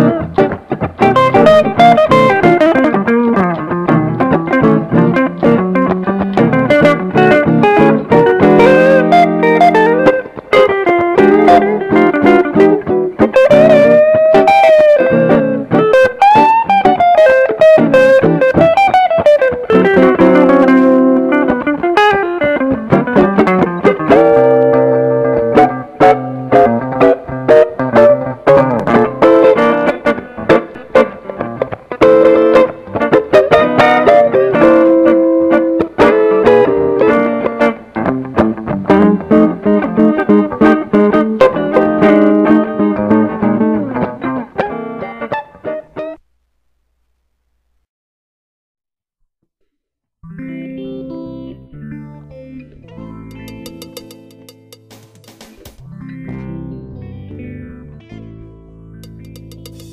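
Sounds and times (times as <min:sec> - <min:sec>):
electric guitars playing blues: 0:00.0 - 0:46.2, 0:50.2 - 0:59.9.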